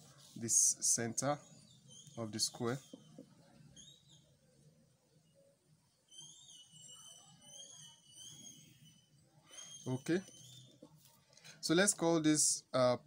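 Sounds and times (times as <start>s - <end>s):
faint high-pitched whistle: 6.0s - 10.8s.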